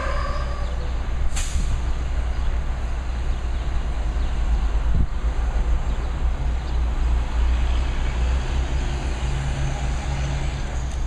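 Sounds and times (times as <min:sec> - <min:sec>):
diesel truck engine rumble: 0:00.0 - 0:11.0
road traffic noise: 0:00.0 - 0:11.0.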